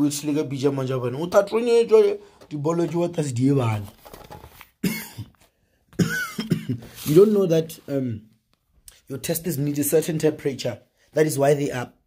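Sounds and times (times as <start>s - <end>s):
man coughing: 4.8s - 5.4s, 6.0s - 7.0s.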